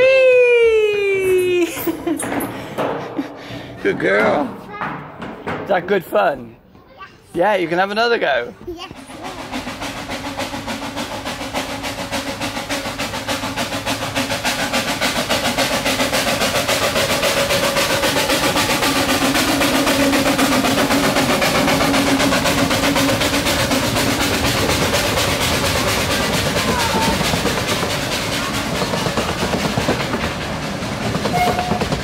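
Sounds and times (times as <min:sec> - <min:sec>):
miniature train clattering past: 0:00.0 - 0:32.0.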